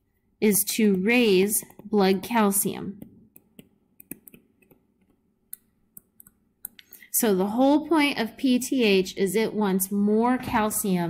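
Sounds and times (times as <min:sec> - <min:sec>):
stylus tapping on tablet screen: 0:00.8 - 0:06.8.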